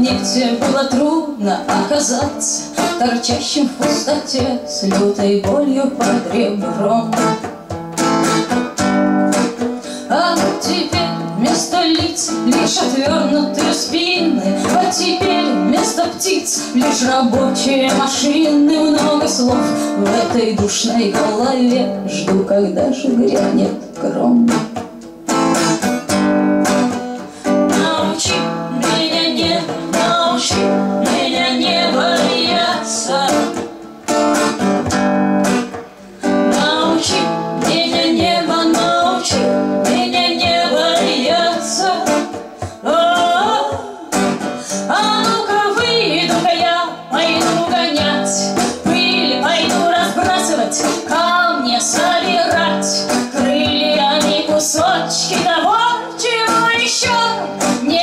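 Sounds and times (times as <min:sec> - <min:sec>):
woman singing: 0:00.0 - 0:07.5, 0:09.4 - 0:24.9, 0:27.4 - 0:33.8, 0:36.2 - 0:58.0
hand drum beat: 0:00.0 - 0:58.0
strummed acoustic guitar: 0:00.0 - 0:58.0.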